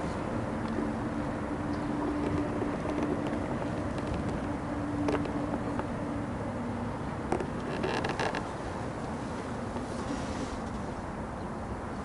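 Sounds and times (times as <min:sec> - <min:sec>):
boat low rumble: 0:00.0 - 0:12.0
light clicks and creaks: 0:01.6 - 0:06.0, 0:07.2 - 0:10.8.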